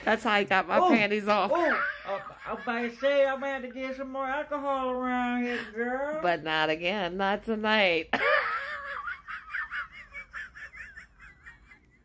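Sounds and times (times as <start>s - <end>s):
woman laughing hard: 8.1s - 12.0s.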